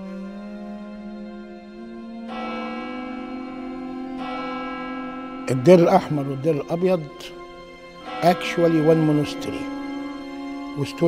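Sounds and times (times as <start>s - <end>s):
church bell ringing: 2.2s - 11.0s.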